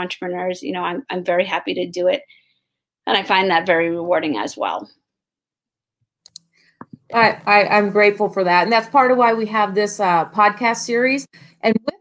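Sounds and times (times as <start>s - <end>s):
person talking: 3.1s - 4.9s, 6.8s - 12.0s.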